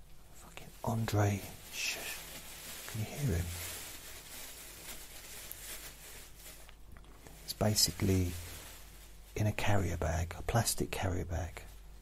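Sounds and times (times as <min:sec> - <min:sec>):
plastic bag rustling: 0:00.4 - 0:12.0.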